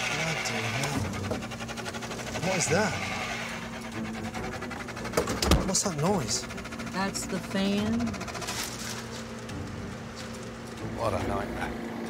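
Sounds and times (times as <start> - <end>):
kitchen fan humming: 0.0 - 12.0.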